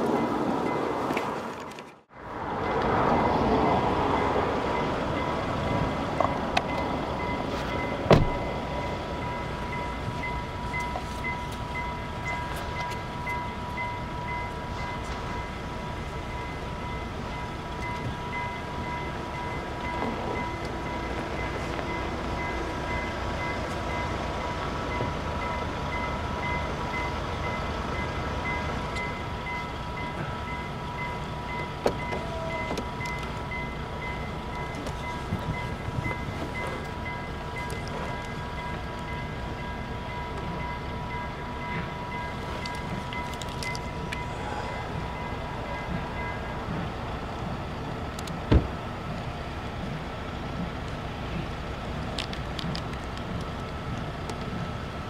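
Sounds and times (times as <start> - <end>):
train rumbling slowly: 0.0 - 55.0
level crossing warning bell: 2.5 - 48.2.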